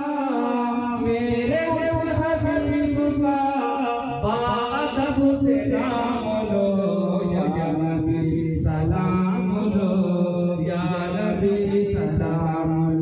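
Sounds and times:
man chanting over loudspeaker: 0:00.0 - 0:13.0.

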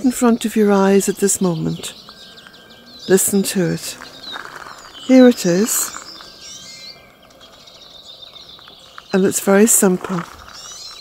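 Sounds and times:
small birds chirping and singing: 0:00.0 - 0:11.0.

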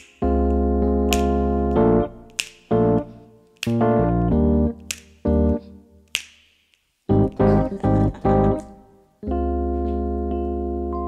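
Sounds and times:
finger snaps: 0:00.0 - 0:07.6.

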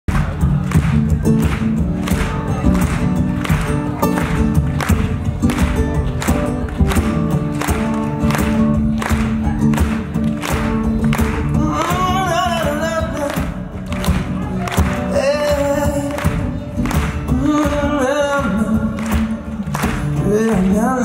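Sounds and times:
drums steady beat: 0:00.1 - 0:21.0
pop-rock band playing: 0:00.1 - 0:21.0.

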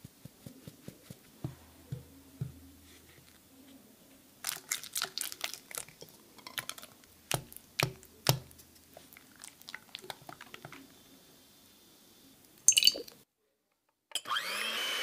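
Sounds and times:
spatula stirring batter in bowl: 0:05.7 - 0:10.9.

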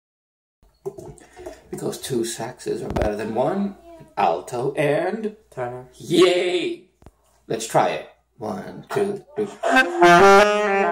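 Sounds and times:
man talking: 0:01.7 - 0:06.9, 0:07.5 - 0:09.9.

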